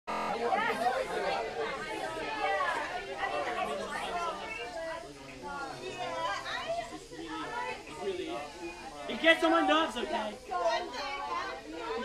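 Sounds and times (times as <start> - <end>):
teenagers chattering: 0.1 - 12.0.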